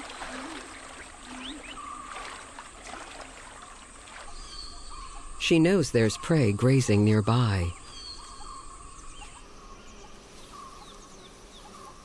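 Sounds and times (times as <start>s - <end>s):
soft jungle hiss: 0.0s - 12.0s.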